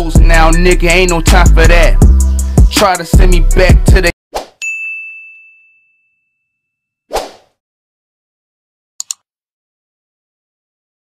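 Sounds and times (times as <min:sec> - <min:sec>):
bell-like ding: 0:04.6 - 0:06.8.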